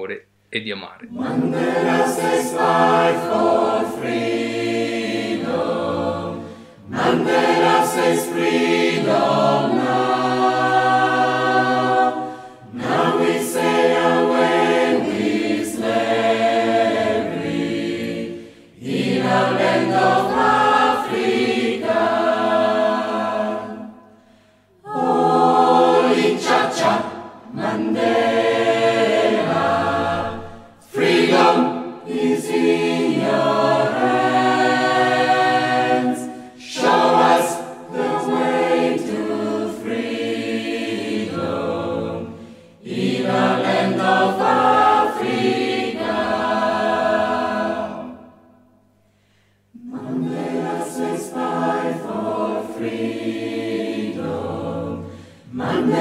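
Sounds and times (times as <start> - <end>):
choir singing: 1.1 - 56.0.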